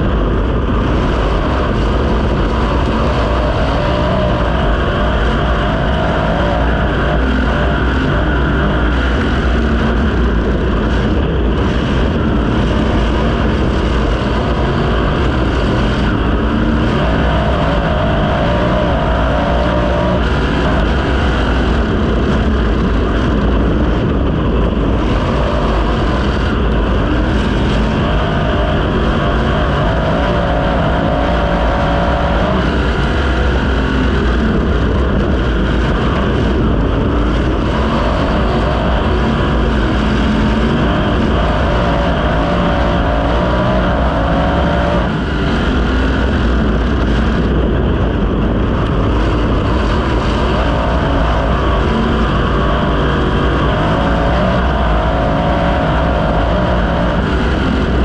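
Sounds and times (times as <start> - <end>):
race car engine revving: 0.0 - 58.0.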